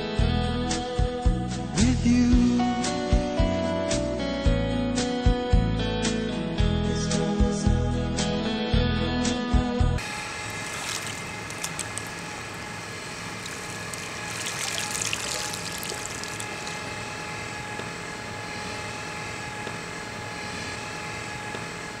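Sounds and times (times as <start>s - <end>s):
skimmer net splashing water: 10.0s - 17.1s
pool water sounds: 10.0s - 17.2s
steady hum: 10.0s - 18.4s.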